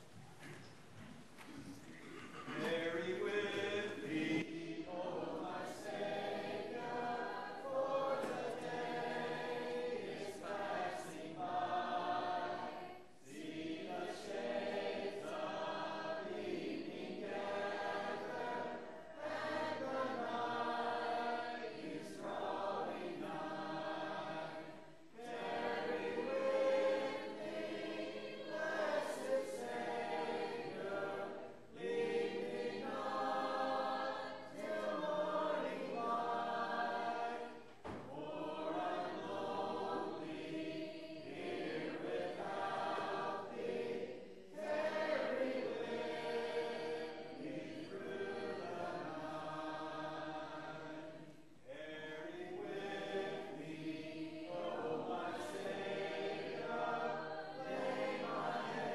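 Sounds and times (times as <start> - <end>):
congregation singing a hymn: 0.0 - 58.9.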